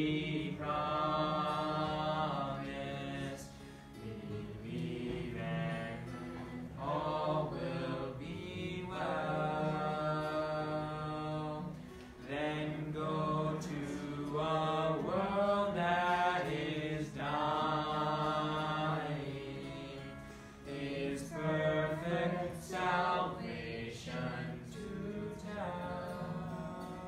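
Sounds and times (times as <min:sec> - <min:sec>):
group singing a hymn: 0:00.0 - 0:27.0.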